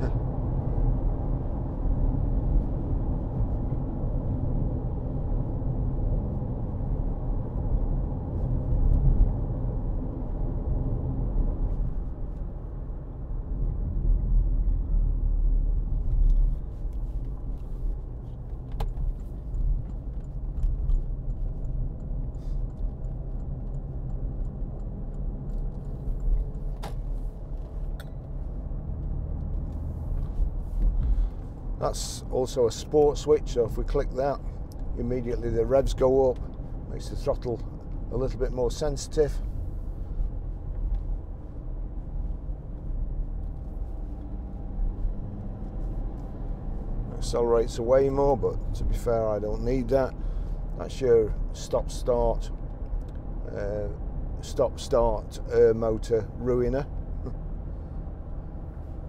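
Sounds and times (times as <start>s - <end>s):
engine and tyre rumble: 0.0s - 59.0s.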